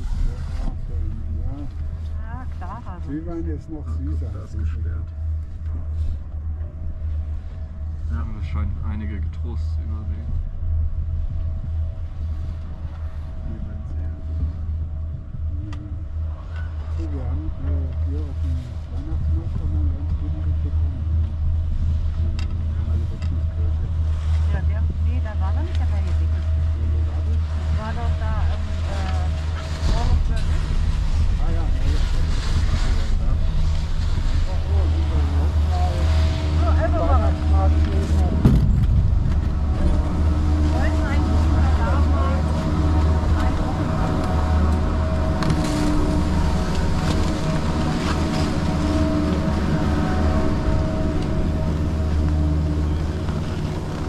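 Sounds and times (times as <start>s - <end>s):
chairlift rumbling: 0.0s - 54.0s
station machinery humming: 0.0s - 54.0s.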